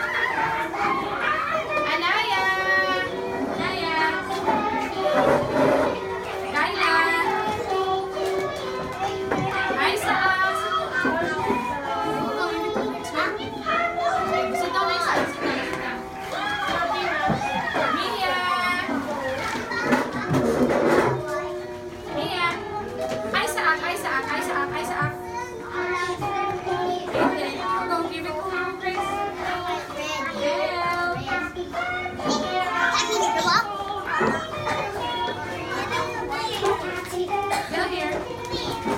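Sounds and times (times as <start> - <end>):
children chattering and calling out: 0.0 - 38.9.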